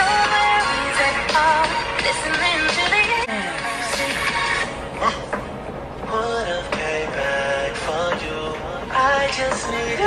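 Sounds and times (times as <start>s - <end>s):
music with singing voice: 0.0s - 10.0s.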